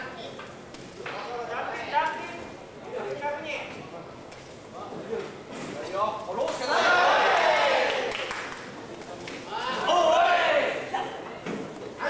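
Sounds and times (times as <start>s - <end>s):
men shouting: 9.5s - 10.9s.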